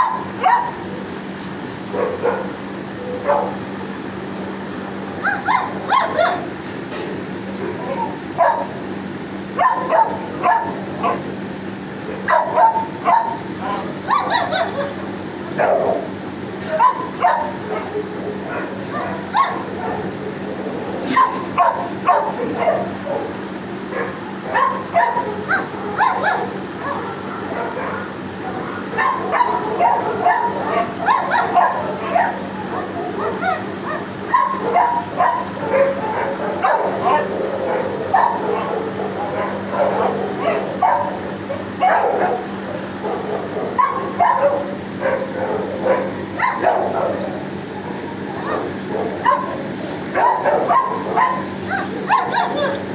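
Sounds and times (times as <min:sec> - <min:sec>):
dogs barking and whining: 0:00.0 - 0:52.9
steady low hum: 0:00.0 - 0:52.9.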